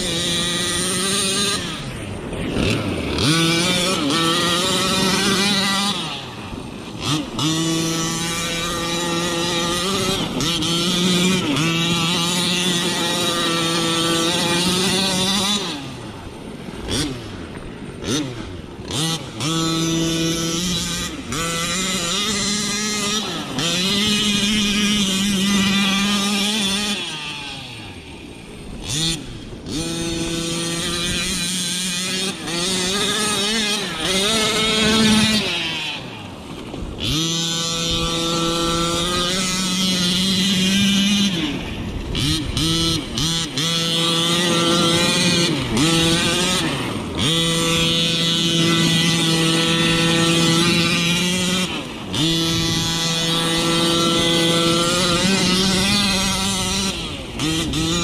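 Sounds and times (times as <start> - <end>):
two-stroke engine revving high: 0.0 - 58.0.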